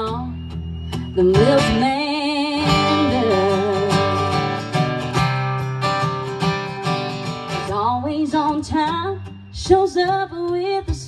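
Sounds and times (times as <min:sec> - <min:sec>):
woman singing a country song: 0:00.0 - 0:05.0, 0:07.5 - 0:11.0
strummed acoustic guitar: 0:00.5 - 0:11.0.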